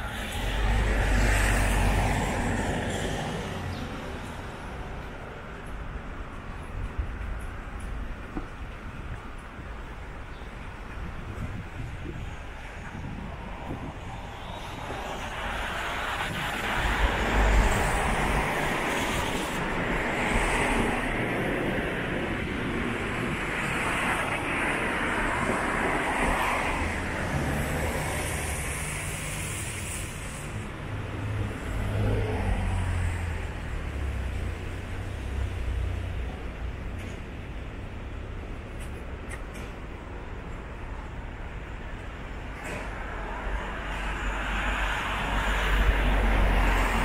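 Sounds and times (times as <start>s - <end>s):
vehicles passing: 0.0s - 47.0s.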